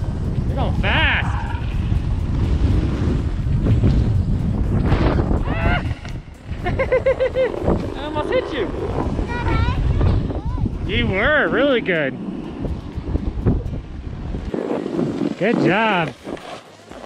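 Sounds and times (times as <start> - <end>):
snowboard sliding over snow: 0.0 - 17.0
wind rumbling on microphone: 0.0 - 17.0.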